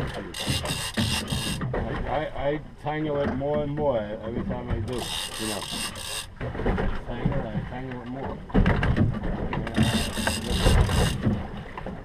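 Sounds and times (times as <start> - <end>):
fishing reel rasping: 0.0 - 1.6, 4.9 - 6.3, 9.7 - 11.2.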